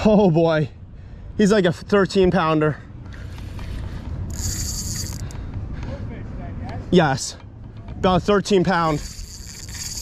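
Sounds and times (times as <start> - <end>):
fishing reel drag buzzing: 3.2 - 5.3, 8.8 - 10.0.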